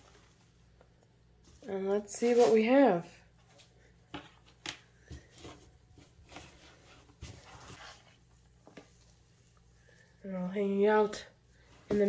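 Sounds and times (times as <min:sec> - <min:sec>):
gloved hand rustling damp paper: 0:01.4 - 0:10.1.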